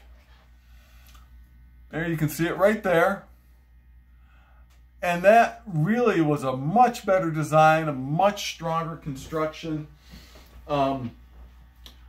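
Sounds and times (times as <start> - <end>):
low electrical hum: 0.0 - 12.0
man talking: 1.9 - 3.3, 5.0 - 9.9, 10.6 - 11.2.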